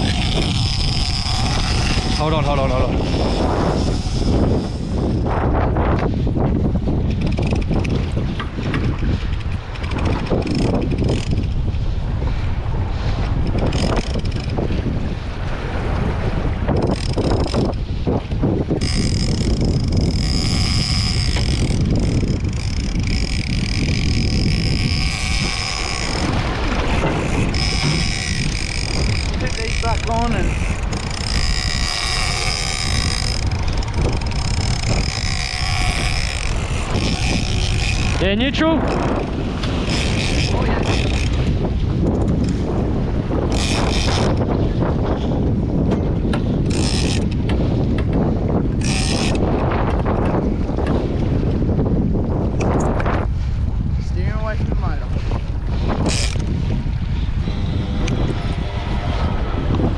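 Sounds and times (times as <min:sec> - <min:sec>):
fishing reel whining: 0:00.0 - 0:06.0, 0:06.8 - 0:11.6, 0:13.2 - 0:14.8, 0:16.2 - 0:45.3, 0:46.5 - 0:47.8, 0:48.7 - 0:50.2, 0:55.8 - 0:59.9
sea wash: 0:00.0 - 0:59.9
wind buffeting microphone: 0:00.0 - 0:59.9.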